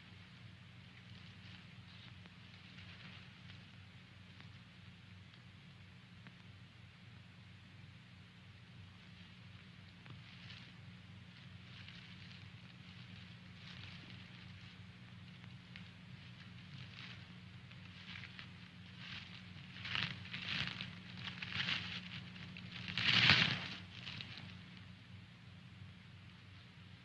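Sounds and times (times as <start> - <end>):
steady low hum: 0.0 - 27.0
dry leaves rustling and crackling: 0.9 - 3.8, 9.0 - 24.9.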